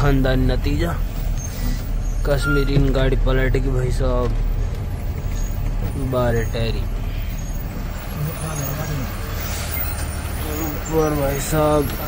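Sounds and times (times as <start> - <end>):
diesel truck engine rumbling: 0.0 - 12.0.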